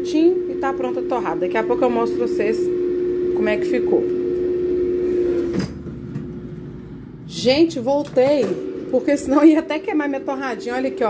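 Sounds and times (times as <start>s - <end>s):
air fryer humming: 0.0s - 11.0s.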